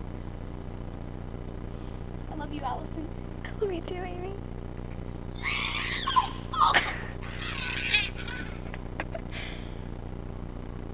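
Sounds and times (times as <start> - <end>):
girls shrieking laughter: 5.4 - 9.3.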